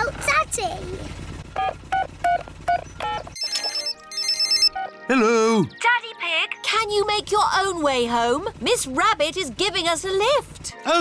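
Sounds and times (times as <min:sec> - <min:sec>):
keypad beeps: 0:01.6 - 0:05.0
phone ringing: 0:01.6 - 0:05.1.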